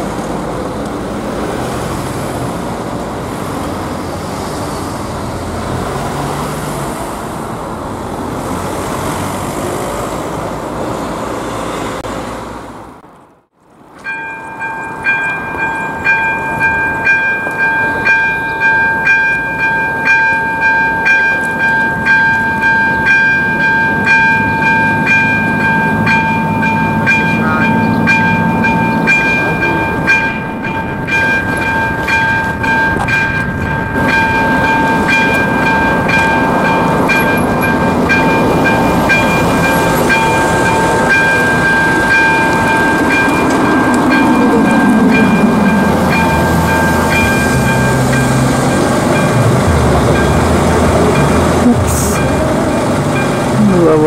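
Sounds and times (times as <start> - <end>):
road traffic noise: 0.0 - 54.0
level crossing warning bell: 13.8 - 54.0
falling hum: 33.4 - 54.0.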